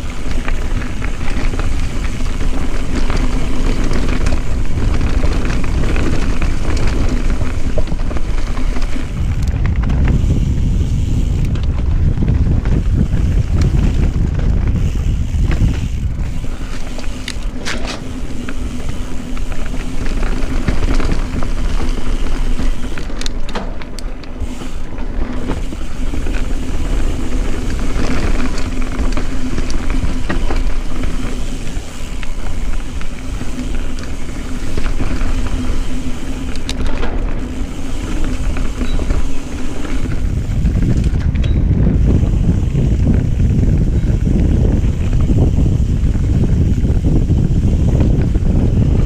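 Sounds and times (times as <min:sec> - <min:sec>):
bike rattling over bumps: 0:00.0 - 0:49.0
bike tyres on dirt and rock: 0:00.0 - 0:49.0
wind rumbling on microphone: 0:00.0 - 0:49.0.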